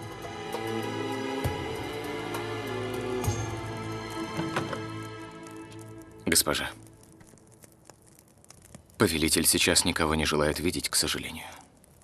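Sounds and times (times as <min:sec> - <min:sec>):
faint clicks: 0:05.4 - 0:09.0.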